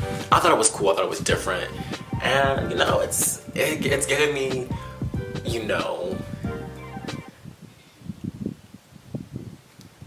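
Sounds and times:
soft low thuds: 0:01.2 - 0:07.3.

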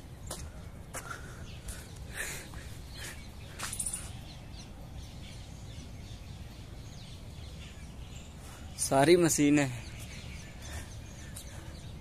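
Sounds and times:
birds chirping: 0:00.0 - 0:12.0
sharp bird calls: 0:00.0 - 0:12.0.

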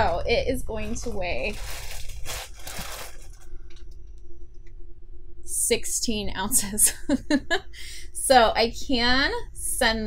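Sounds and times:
plastic mailer rustling: 0:00.0 - 0:03.5
faint steady hum: 0:00.0 - 0:10.0.

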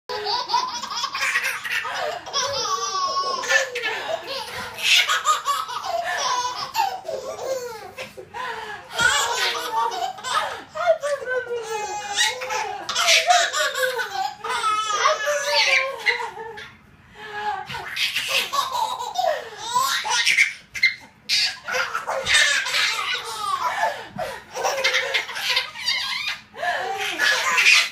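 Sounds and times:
babies giggling: 0:00.1 - 0:16.8, 0:17.6 - 0:27.9.

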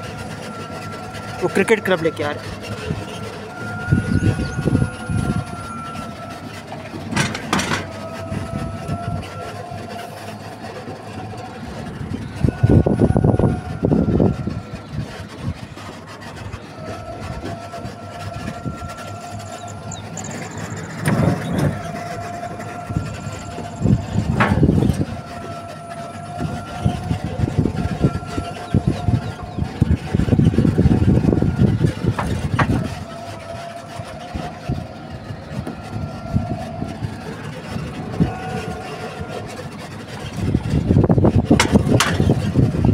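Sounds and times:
road and wind rumble: 0:00.0 - 0:42.9
vehicle whine: 0:00.0 - 0:42.9.

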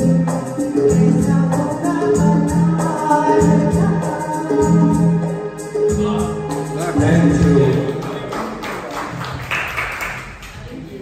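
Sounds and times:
live band playing: 0:00.0 - 0:09.5
scattered hand claps: 0:07.7 - 0:10.6.

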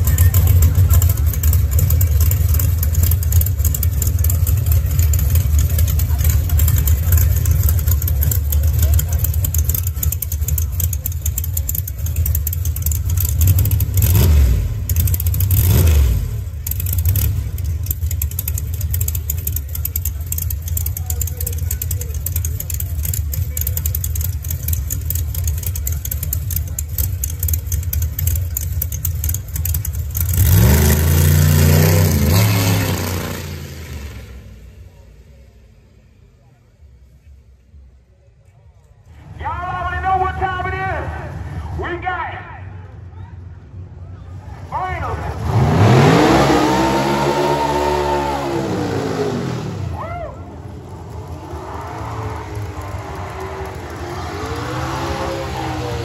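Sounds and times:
car engine idling and revving: 0:00.0 - 0:56.0.

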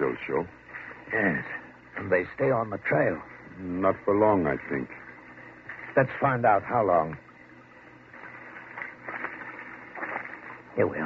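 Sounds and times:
feet rustling through grass: 0:08.1 - 0:10.8.

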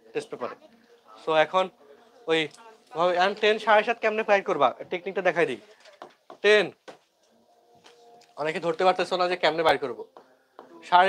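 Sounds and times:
man speaking: 0:00.0 - 0:05.7.

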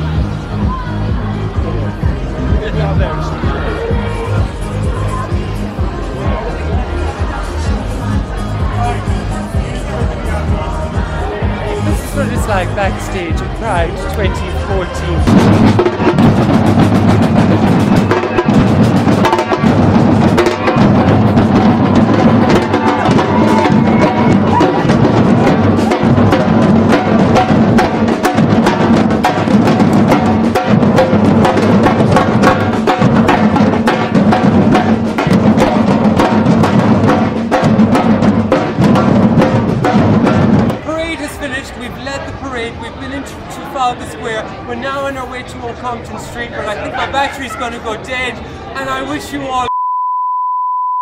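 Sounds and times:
street drumming band: 0:00.0 - 0:49.6
crowd voices: 0:00.0 - 0:49.7.

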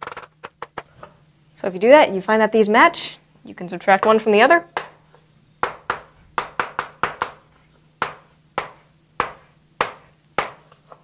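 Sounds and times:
chalk tapping on blackboard: 0:05.6 - 0:11.0.

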